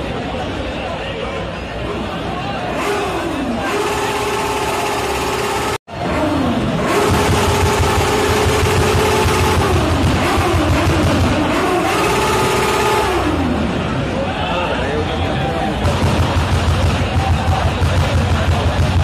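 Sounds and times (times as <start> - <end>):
crowd noise: 0.0 - 19.0
car engine revving: 2.6 - 14.2.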